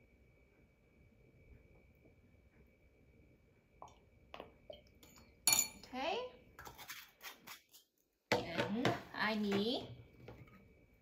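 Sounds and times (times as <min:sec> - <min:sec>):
spoon clinking against a bowl: 0:05.0 - 0:05.9.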